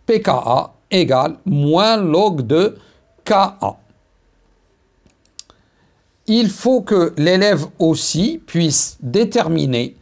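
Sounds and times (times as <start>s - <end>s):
faint sharp clicks: 5.0s - 5.6s.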